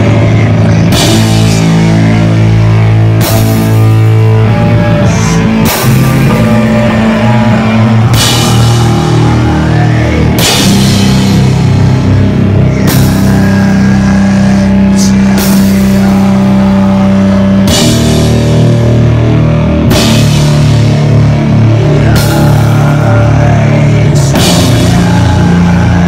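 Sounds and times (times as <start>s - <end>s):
sludge metal band playing: 0.0s - 26.0s.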